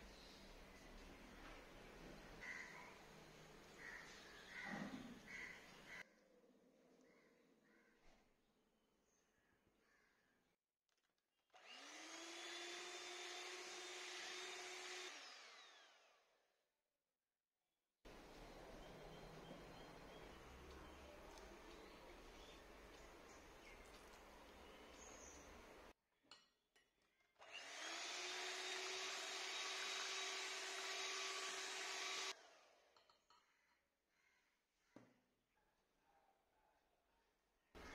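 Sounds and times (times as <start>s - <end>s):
electric hand mixer whining: 11.6s - 16.2s, 27.4s - 32.8s.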